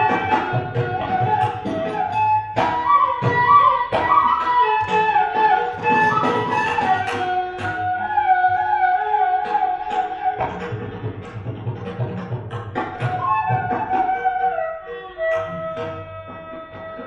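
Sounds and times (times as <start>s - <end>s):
bamboo flute melody: 0.0s - 17.0s.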